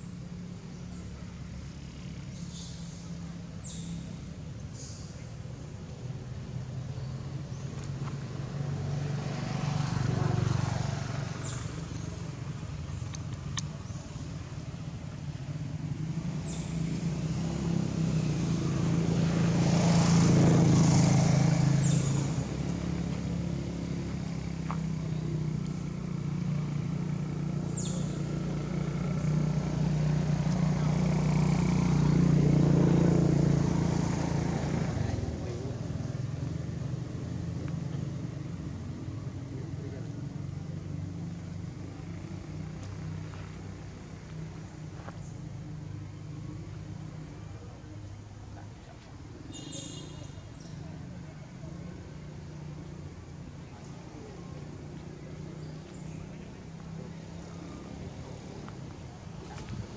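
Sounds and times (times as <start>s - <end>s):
motor vehicles passing: 0.0s - 59.9s.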